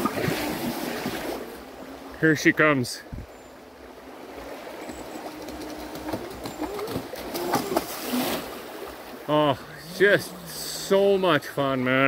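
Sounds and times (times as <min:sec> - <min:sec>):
running water: 0:00.0 - 0:12.0
jetboat motor: 0:04.1 - 0:07.6.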